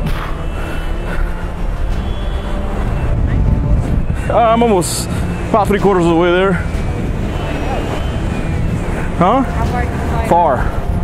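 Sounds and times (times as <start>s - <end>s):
wind buffeting microphone: 0.9s - 11.0s.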